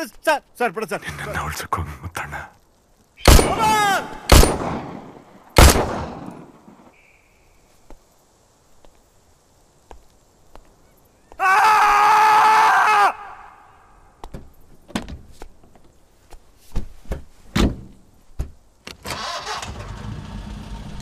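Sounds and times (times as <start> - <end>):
pistol shot with echo: 3.2 - 6.5.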